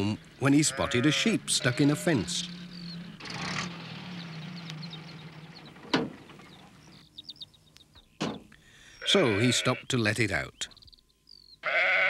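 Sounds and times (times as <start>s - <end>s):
van engine running: 0.0s - 8.5s
small birds chirping: 0.0s - 11.8s.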